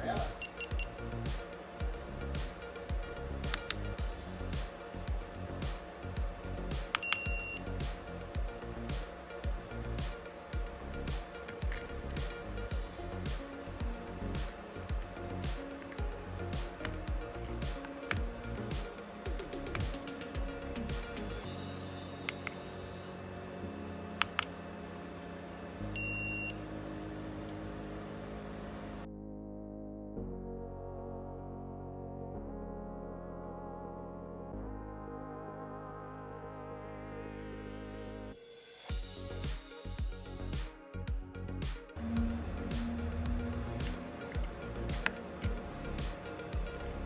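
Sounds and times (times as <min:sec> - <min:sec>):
background music with steady beat: 0:00.0 - 0:29.1, 0:31.9 - 0:47.0
short high electronic beep: 0:00.4 - 0:00.9, 0:07.0 - 0:07.6, 0:26.0 - 0:26.6
sharp clicks: 0:03.5 - 0:03.8
short buzzer blips: 0:26.0 - 0:26.6.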